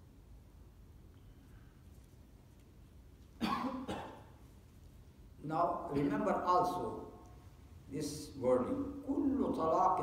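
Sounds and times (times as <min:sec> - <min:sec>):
person coughing: 0:03.4 - 0:04.3.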